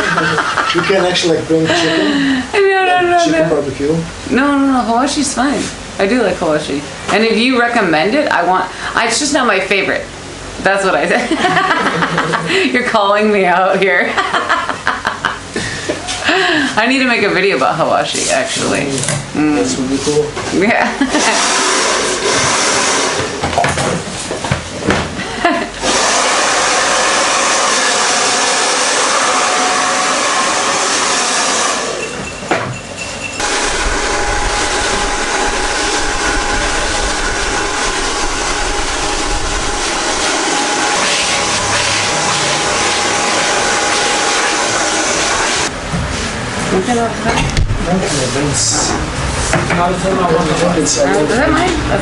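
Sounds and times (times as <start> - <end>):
hair dryer blowing: 21.0 - 23.5, 25.4 - 32.2, 33.4 - 45.7.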